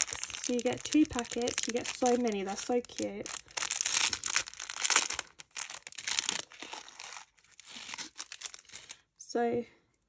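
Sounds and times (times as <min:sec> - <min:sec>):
plastic packet crinkling: 0:00.0 - 0:09.1.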